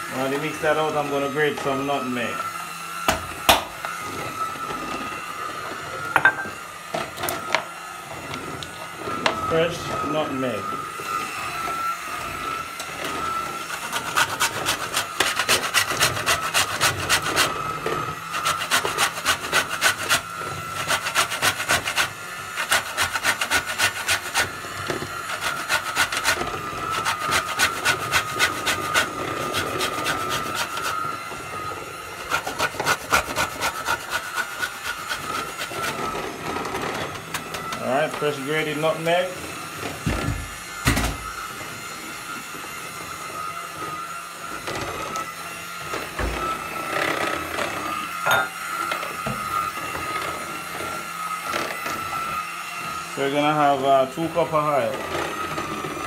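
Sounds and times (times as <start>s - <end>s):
nutmeg grating on metal grater: 8.3s - 39.7s.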